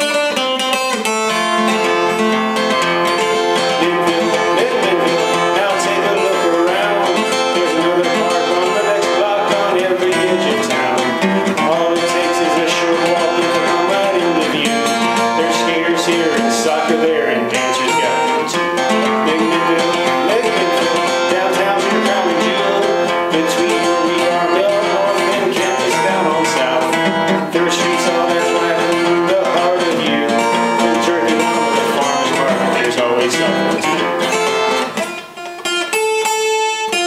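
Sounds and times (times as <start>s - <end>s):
acoustic guitar strumming: 0.0s - 37.0s.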